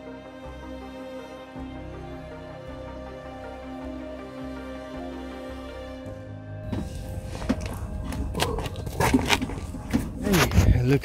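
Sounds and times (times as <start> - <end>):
low rumble: 6.6 - 11.0.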